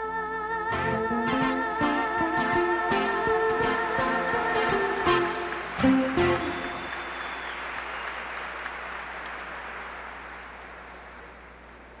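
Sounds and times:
live band final chord: 0.8s - 7.4s
audience applause: 3.6s - 12.0s.

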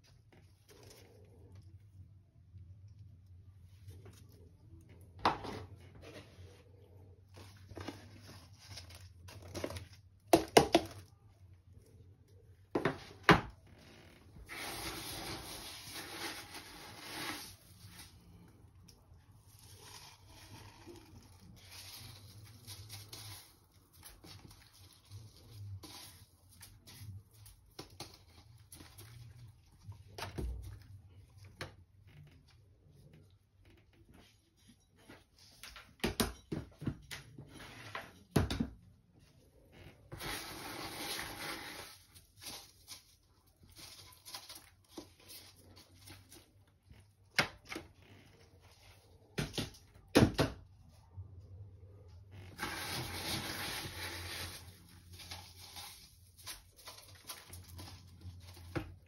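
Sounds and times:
dry rustling of potting mix: 0.0s - 33.6s, 39.4s - 49.4s, 52.5s - 59.0s.

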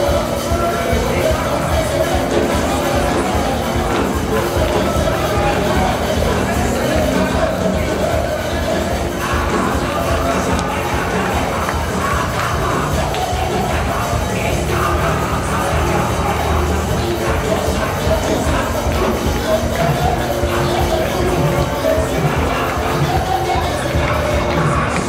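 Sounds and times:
church worship music: 0.0s - 25.0s
congregation voices: 0.0s - 25.0s
people cheering: 0.0s - 25.0s.

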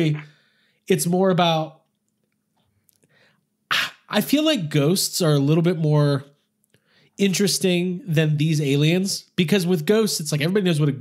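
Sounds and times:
person talking: 0.0s - 0.3s, 0.9s - 1.8s, 3.7s - 6.3s, 7.2s - 11.0s.

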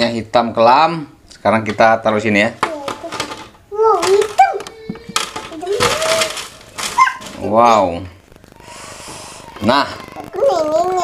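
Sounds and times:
chips clattering onto plastic tray: 2.5s - 7.8s.

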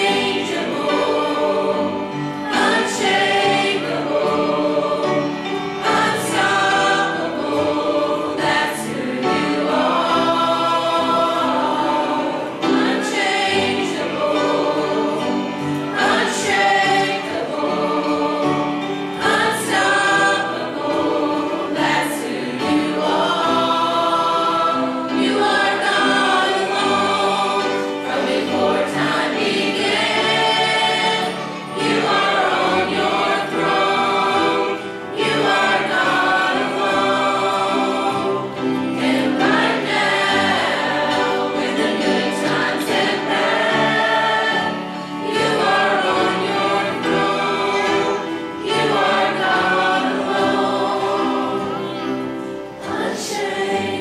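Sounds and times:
choir singing a hymn: 0.0s - 54.0s.

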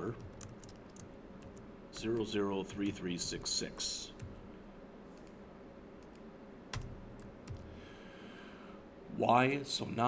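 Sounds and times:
computer keyboard keystrokes: 0.1s - 2.9s, 4.2s - 4.4s, 6.0s - 7.7s.

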